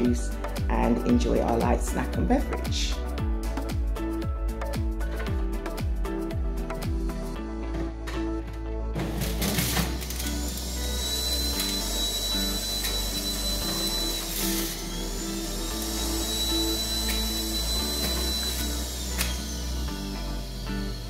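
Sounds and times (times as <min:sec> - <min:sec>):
background music: 0:00.0 - 0:21.0
juicer motor whining: 0:09.2 - 0:21.0.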